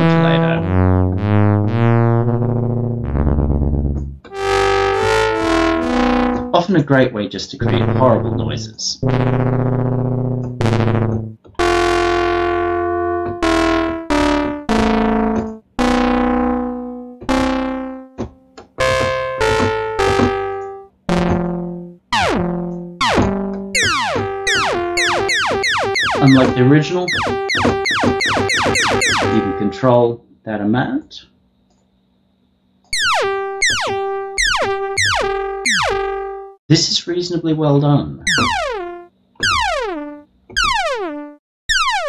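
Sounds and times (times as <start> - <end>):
clangorous synth notes: 0.0 - 7.0, 7.6 - 30.0, 38.3 - 42.0.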